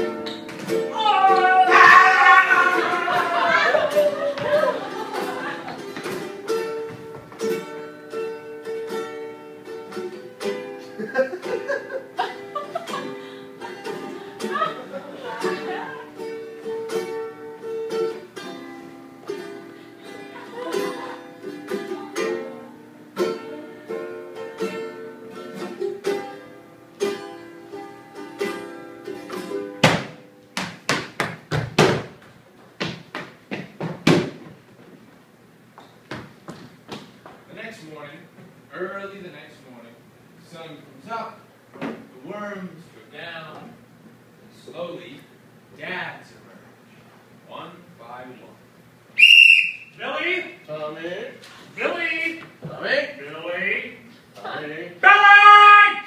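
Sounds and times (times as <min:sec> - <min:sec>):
ukulele: 0:00.0 - 0:32.1
acoustic guitar: 0:00.0 - 0:35.1
ball thumping on wooden floor: 0:29.8 - 0:32.2, 0:32.8 - 0:34.6.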